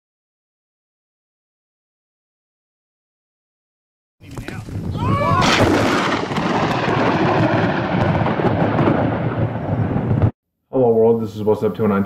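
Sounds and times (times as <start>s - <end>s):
thunder rumbling: 4.7s - 10.4s.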